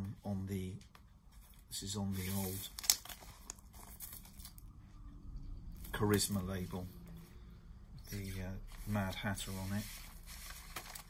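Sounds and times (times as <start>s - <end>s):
steady low hum: 0.0s - 11.0s
paper sleeve rustling: 2.1s - 4.6s, 8.1s - 11.0s.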